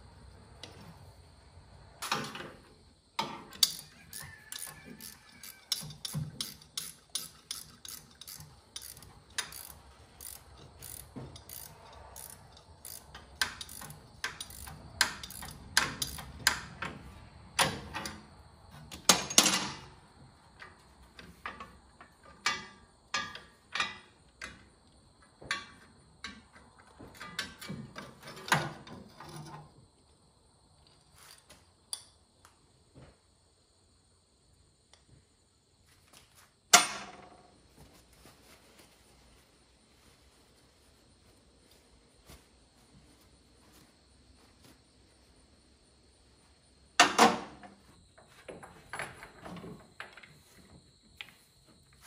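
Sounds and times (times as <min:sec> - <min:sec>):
ratchet wrench clicking: 0:03.6 - 0:16.7.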